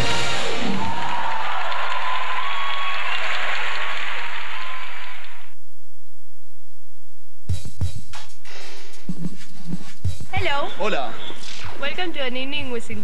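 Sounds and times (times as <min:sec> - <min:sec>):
stage music: 0:00.0 - 0:05.4, 0:07.5 - 0:12.9
audience applauding: 0:00.0 - 0:05.5.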